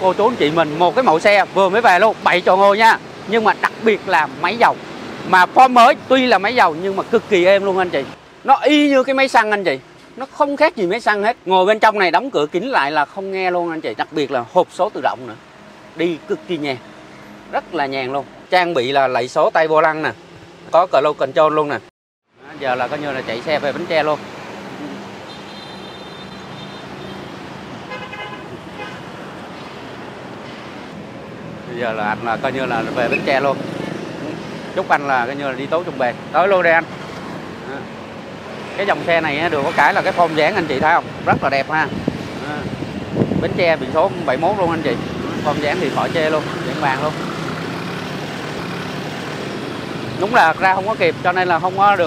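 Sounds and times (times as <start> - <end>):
motorbikes passing: 0.0 - 21.8, 22.4 - 52.0
cars passing on highway: 0.0 - 52.0
car horn toots: 25.3 - 27.2, 27.9 - 29.0.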